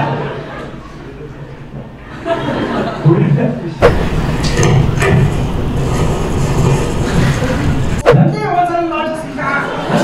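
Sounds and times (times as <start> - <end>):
object rolling across wooden board: 3.9 - 8.0.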